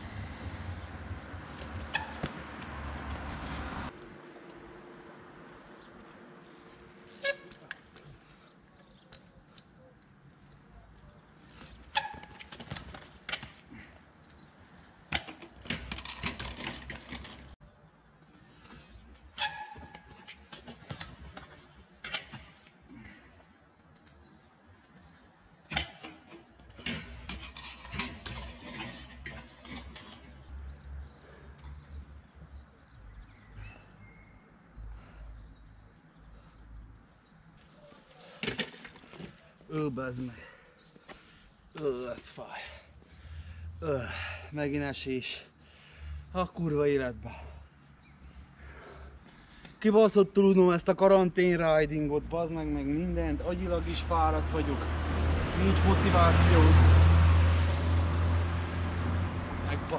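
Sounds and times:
low traffic rumble: 0.0s - 59.9s
small birds chirping: 7.9s - 12.0s, 30.7s - 38.4s, 39.2s - 43.6s, 47.5s - 50.8s.

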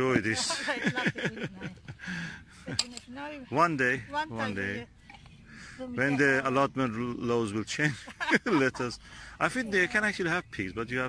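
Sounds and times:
people talking: 0.0s - 1.9s, 5.8s - 11.0s.

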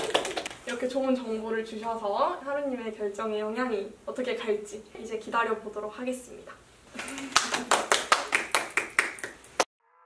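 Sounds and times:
people clapping: 0.0s - 0.6s, 7.0s - 9.7s.

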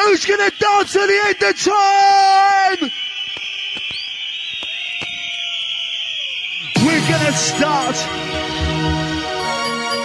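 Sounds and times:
electronic beat and bass: 6.8s - 9.6s.

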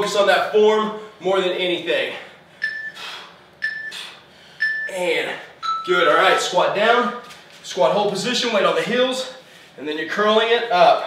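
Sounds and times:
timer countdown beeps: 2.6s - 6.6s.

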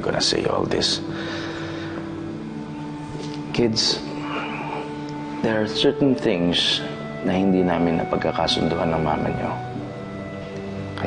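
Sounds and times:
soft sustained background score: 0.0s - 11.0s.

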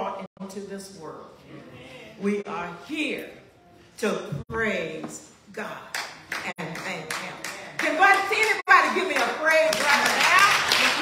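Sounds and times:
hand clapping: 5.9s - 11.0s.

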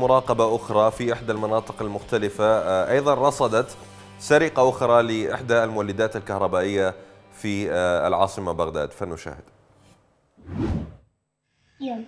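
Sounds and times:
whoosh sound effect: 10.4s - 11.0s.

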